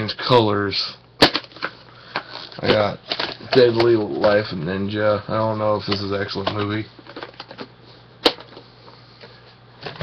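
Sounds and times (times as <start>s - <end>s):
cassette set down clack: 1.2s - 1.8s, 5.9s - 8.6s.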